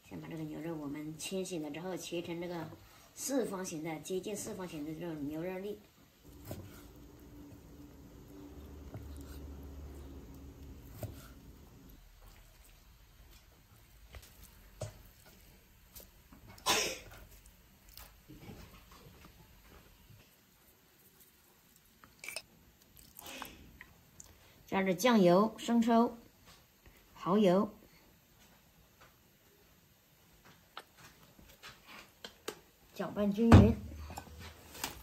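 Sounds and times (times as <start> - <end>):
low steady hum: 6.2 - 19.0
knife scrape: 6.3 - 7.0, 10.7 - 11.7.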